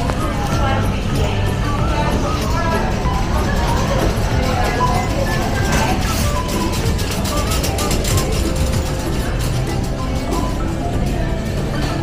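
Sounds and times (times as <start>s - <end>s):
shopping trolley rattling: 0.0s - 12.0s.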